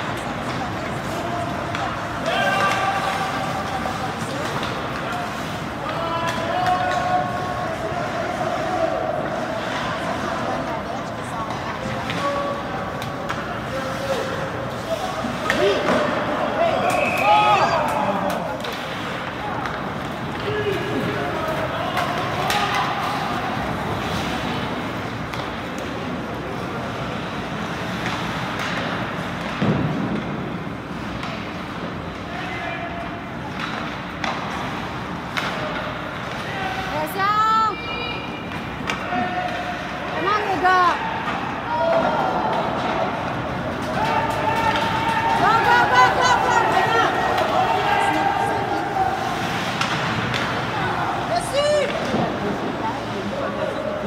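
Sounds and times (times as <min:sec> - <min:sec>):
crowd chatter: 0:00.0 - 0:54.0
hockey sticks and puck clacking: 0:00.0 - 0:54.0
voices calling and shouting: 0:35.5 - 0:54.0.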